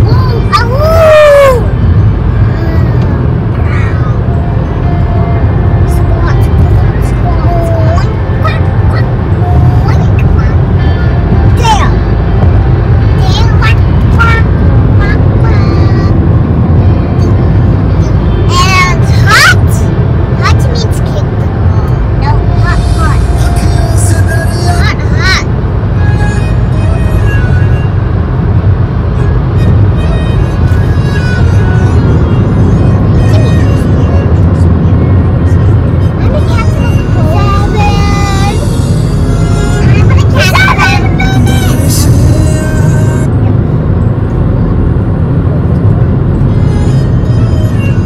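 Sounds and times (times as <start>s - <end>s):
car road and engine rumble: 0.0s - 48.0s
music playing: 0.0s - 48.0s.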